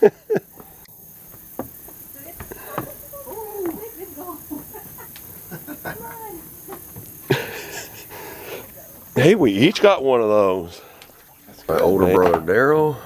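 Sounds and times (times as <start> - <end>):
footsteps on wooden deck: 0.3 - 9.1, 10.8 - 12.5.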